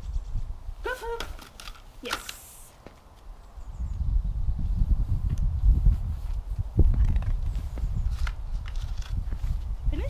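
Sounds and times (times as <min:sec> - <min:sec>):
two-part voice call: 0:00.8 - 0:01.4.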